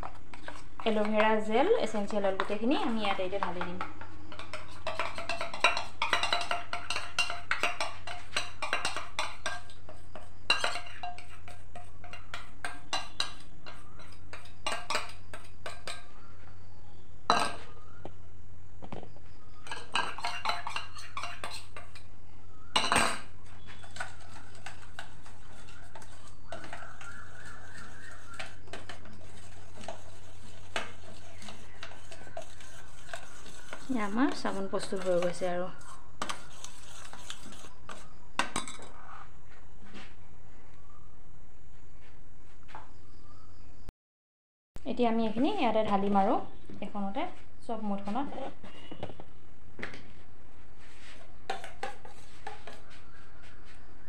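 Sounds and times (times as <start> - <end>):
utensils clinking on steel pots: 0.0 - 16.1, 19.6 - 22.1, 22.7 - 38.9.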